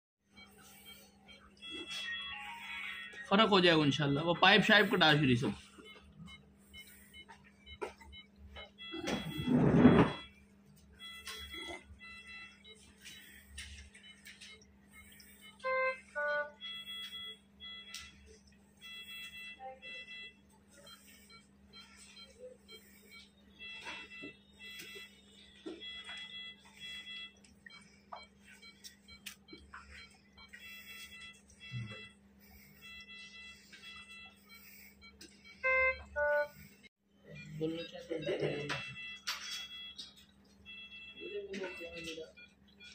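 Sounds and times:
monitor alarm beeping: 0.2s - 42.9s
low hum of equipment: 0.3s - 42.9s
person speaking: 3.2s - 5.7s.

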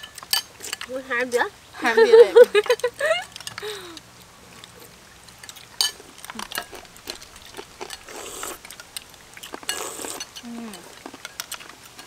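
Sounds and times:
spoons clicking against bowls: 0.0s - 0.9s, 5.3s - 12.0s
wet slurping: 5.4s - 12.0s.

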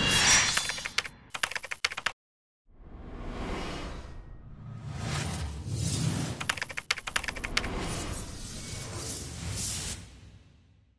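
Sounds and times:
keyboard key clicks: 0.7s - 2.2s, 6.4s - 7.7s.

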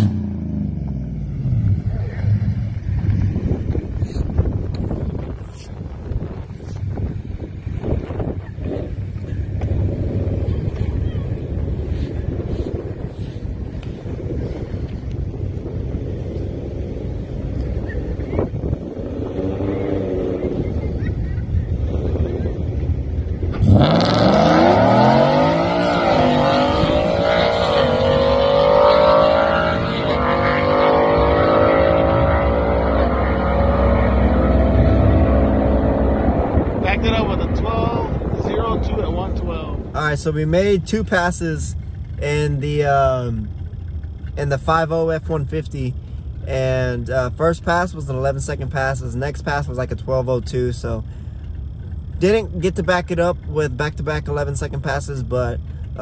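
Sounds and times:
truck engine idling and accelerating: 0.0s - 56.0s.

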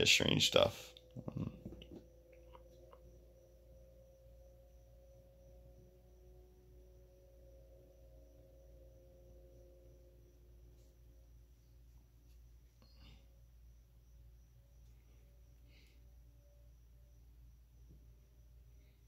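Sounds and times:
faint steady hum: 0.0s - 19.0s.

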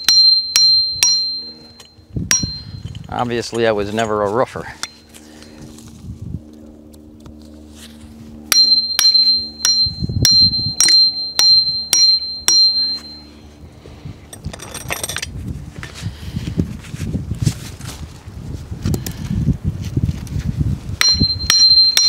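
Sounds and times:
hatchet striking metal tree step: 0.0s - 3.1s, 8.5s - 13.2s, 21.0s - 22.0s
scraping rustle: 16.7s - 20.6s.

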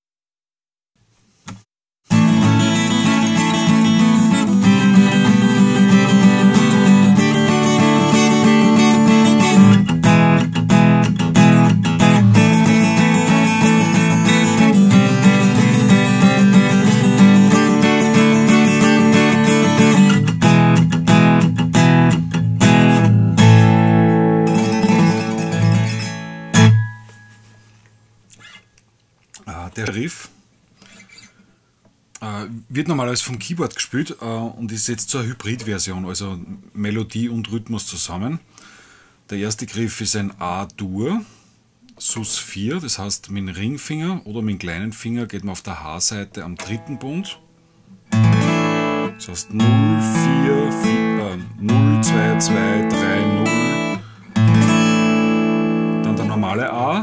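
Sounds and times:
acoustic guitar strumming: 2.1s - 28.6s, 46.4s - 57.0s.

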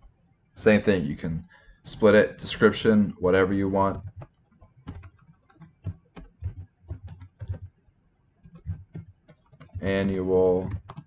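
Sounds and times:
typing on computer keyboard: 3.8s - 7.8s, 8.4s - 11.0s.

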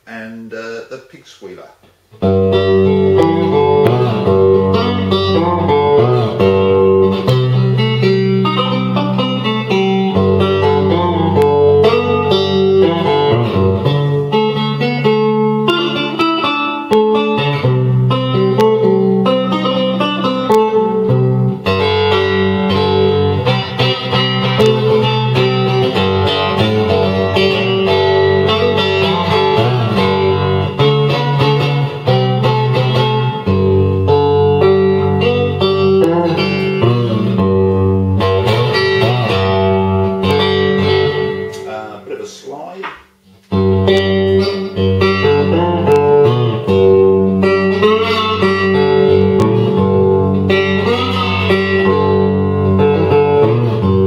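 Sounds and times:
amplified resonator guitar melody: 2.0s - 41.8s, 43.2s - 54.0s.

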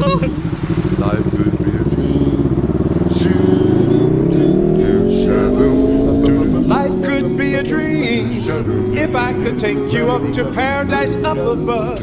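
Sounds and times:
motorbike engine accelerating: 0.0s - 12.0s.

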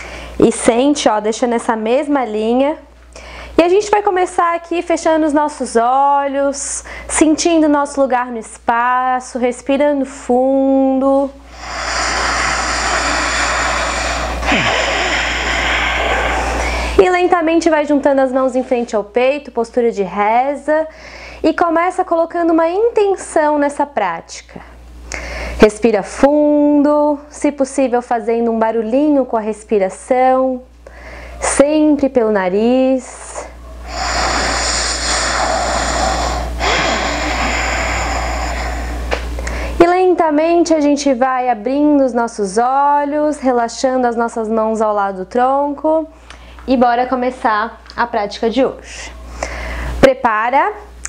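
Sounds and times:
woman breathing deeply: 0.0s - 0.4s, 3.2s - 3.6s, 11.4s - 17.0s, 20.9s - 21.4s, 25.1s - 25.6s, 30.8s - 31.4s, 33.8s - 39.8s, 49.2s - 50.0s.

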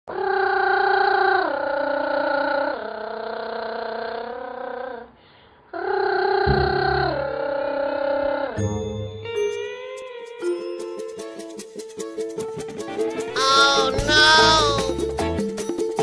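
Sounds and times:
low bass: 6.5s - 7.5s
falling jingle notes: 8.6s - 12.0s.

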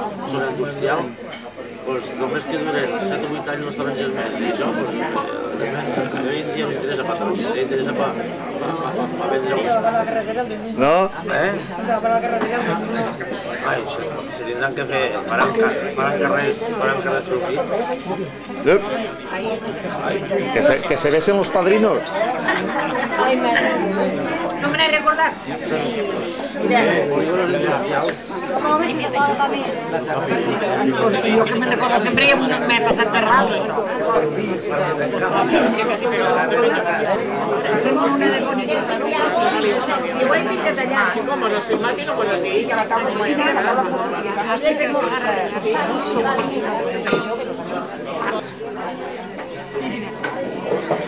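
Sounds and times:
people chattering indistinctly: 0.0s - 51.0s
people talking at once: 0.0s - 51.0s.

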